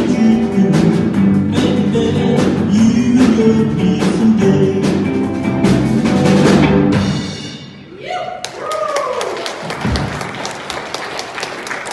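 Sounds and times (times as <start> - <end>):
live band song: 0.0 - 7.9
audience clapping: 8.4 - 11.9.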